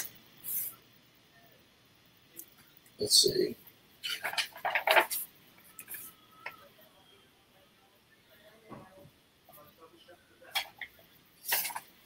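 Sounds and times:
paper pages rustling: 11.4s - 11.9s.

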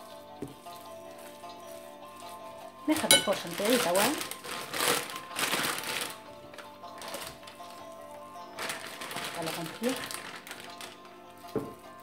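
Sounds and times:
background music with held notes: 0.0s - 12.0s
plastic bag crinkling: 0.0s - 12.0s.

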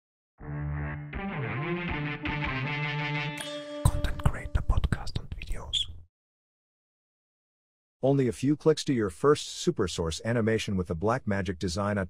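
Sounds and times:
whispered voice: 3.9s - 5.9s.

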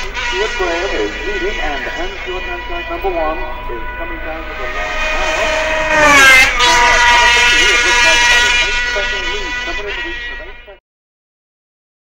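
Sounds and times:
faint public-address commentator: 0.0s - 10.8s
racing motorcycle passing at high revs: 4.8s - 7.6s.

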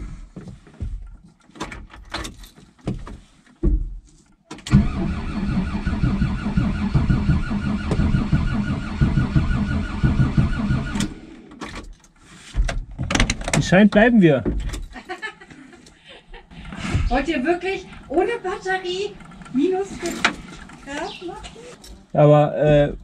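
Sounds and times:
starter motor cranking engine: 4.7s - 11.6s, 16.3s - 22.1s
starter clicks: 15.8s - 22.0s.

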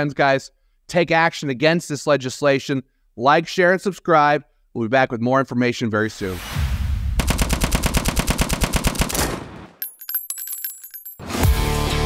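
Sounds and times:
automatic gunfire burst: 7.2s - 9.5s.

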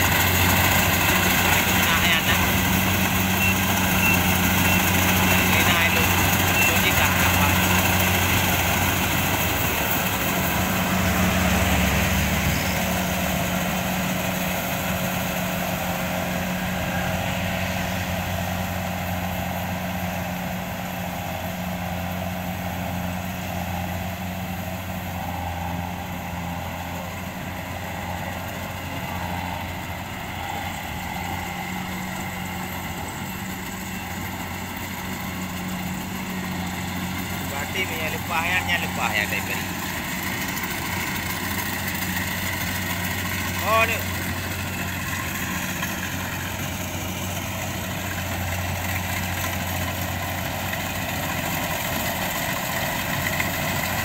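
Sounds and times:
combine harvester engine running: 0.0s - 54.0s.

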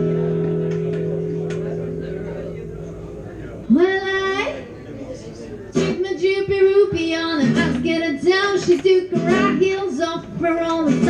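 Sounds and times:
acoustic guitar: 0.0s - 4.3s, 5.7s - 11.0s
woman singing: 6.0s - 11.0s.

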